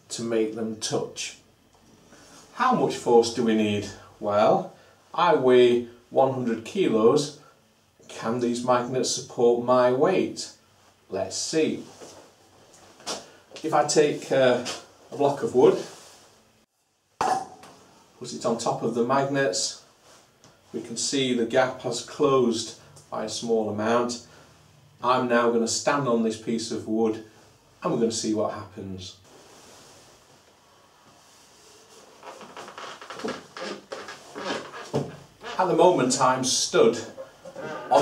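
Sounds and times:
man's voice: 0:35.6 - 0:38.0.

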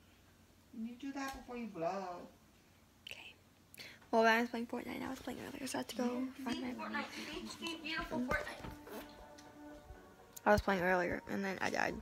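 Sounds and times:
soft breathy hiss: 0:01.9 - 0:09.2.

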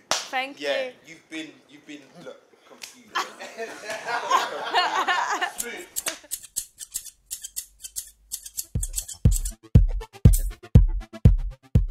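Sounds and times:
scissors snipping hair: 0:05.6 - 0:09.6
deep electronic bass beat: 0:08.8 - 0:11.9.

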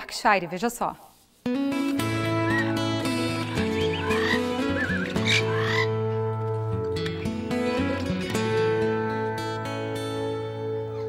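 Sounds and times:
acoustic guitar music: 0:01.4 - 0:11.0
warbling animal calls: 0:02.3 - 0:06.2.

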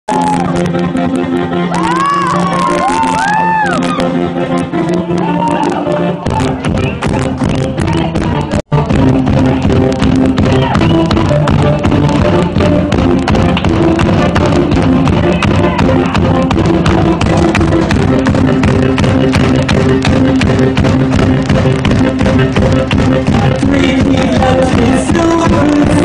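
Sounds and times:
sustained keyboard chords: 0:00.1 - 0:26.0
drum kit played fast: 0:06.2 - 0:26.0.

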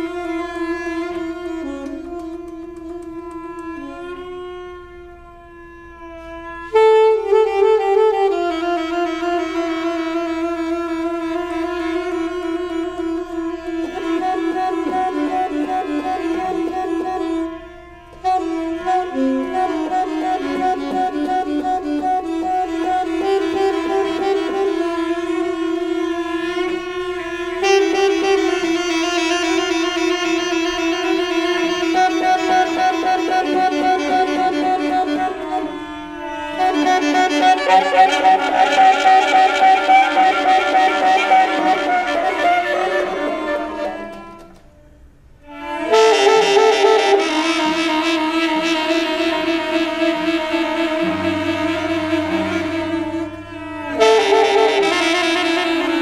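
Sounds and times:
bowed cello: 0:00.0 - 0:44.6, 0:45.4 - 0:56.0
saxophone sustained notes: 0:00.0 - 0:56.0.

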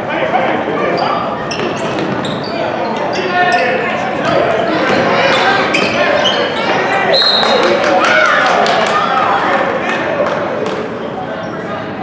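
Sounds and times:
crowd murmur echoing: 0:00.0 - 0:12.0
sneakers squeaking on hardwood floor: 0:00.9 - 0:07.6
basketball bouncing: 0:04.2 - 0:06.0.

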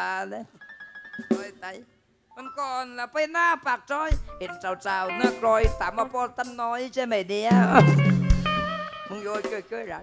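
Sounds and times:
person speaking: 0:04.0 - 0:08.1
low drum thump: 0:07.5 - 0:08.8
held guitar notes: 0:07.5 - 0:09.2.

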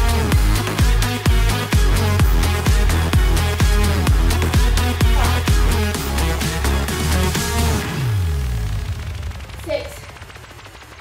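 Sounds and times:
electronic dance music: 0:00.0 - 0:08.5.

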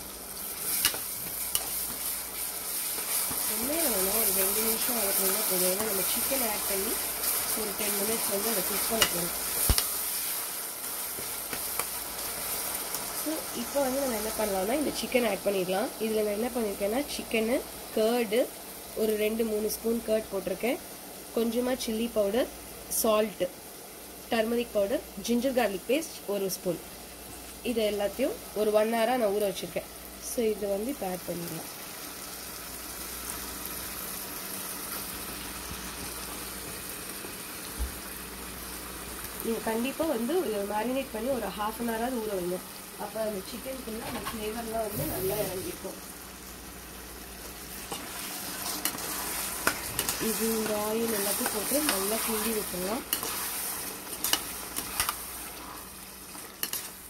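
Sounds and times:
vegetables sizzling in oil: 0:00.0 - 0:57.0
metal spoon stirring: 0:00.6 - 0:02.1, 0:47.9 - 0:57.0.

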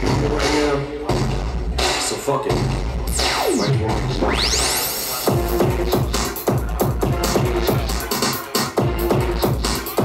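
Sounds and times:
electronic dance beat: 0:00.0 - 0:10.0
rising electronic sweep: 0:03.2 - 0:05.2
falling electronic sweep: 0:03.3 - 0:05.1.

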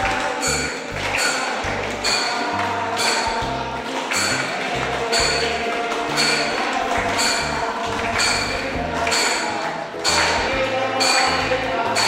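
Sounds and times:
held melody line: 0:00.0 - 0:12.0
people clapping along: 0:00.0 - 0:12.0
ringing bell strikes: 0:00.4 - 0:12.0.

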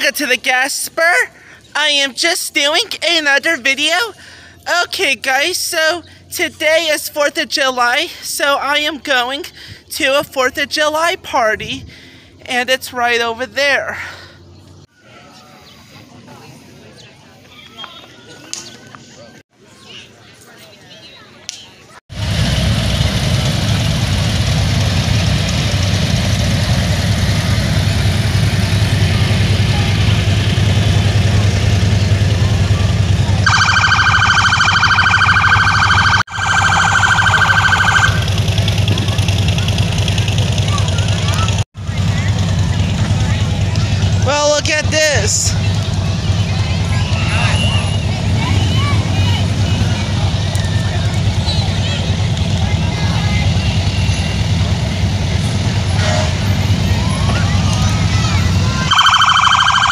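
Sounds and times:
crowd chatter: 0:14.9 - 0:22.0, 0:27.3 - 0:59.9
police siren: 0:33.3 - 0:38.4, 0:58.7 - 0:59.9.

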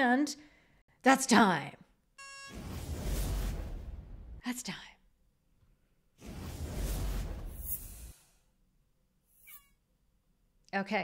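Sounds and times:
short electronic beep: 0:02.2 - 0:02.7
whoosh with deep rumble: 0:02.6 - 0:04.4, 0:06.2 - 0:08.4.

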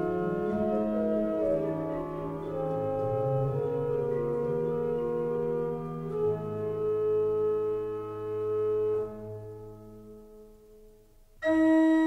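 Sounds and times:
pipe organ chord: 0:00.0 - 0:10.5, 0:11.4 - 0:12.0.

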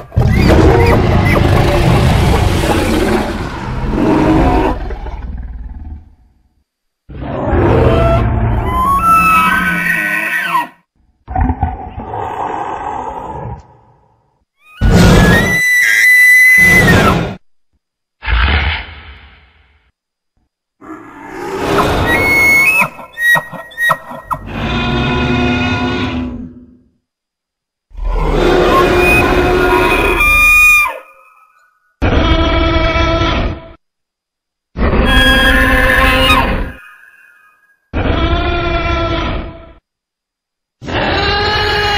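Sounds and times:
dinosaur roars: 0:00.0 - 0:06.2, 0:11.3 - 0:14.1, 0:20.8 - 0:22.3, 0:24.4 - 0:26.8, 0:27.9 - 0:30.6
high-pitched creature call: 0:07.3 - 0:10.8, 0:14.6 - 0:17.4, 0:20.8 - 0:26.2, 0:28.1 - 0:33.5, 0:34.8 - 0:39.5.

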